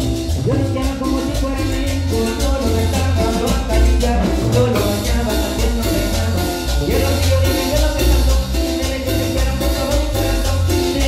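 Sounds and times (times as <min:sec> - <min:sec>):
congas and timbales: 0:00.0 - 0:11.0
deep bass line: 0:00.0 - 0:11.0
latin dance band playing: 0:00.0 - 0:11.0.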